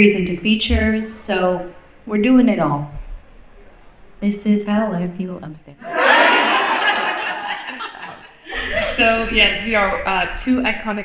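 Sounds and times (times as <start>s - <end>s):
audience laughing: 5.8s - 9.3s.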